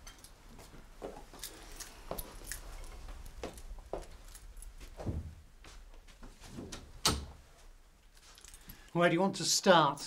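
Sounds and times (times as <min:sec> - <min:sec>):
footsteps of people walking: 0:00.5 - 0:06.8
keys jingling: 0:01.4 - 0:04.9.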